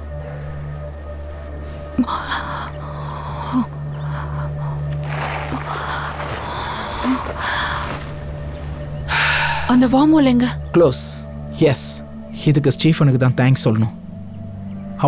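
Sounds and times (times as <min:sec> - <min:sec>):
low music drone: 0:00.0 - 0:15.0.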